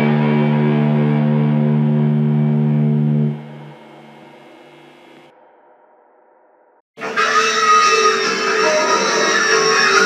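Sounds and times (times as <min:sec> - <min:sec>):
distorted electric guitar chord: 0:00.0 - 0:05.3.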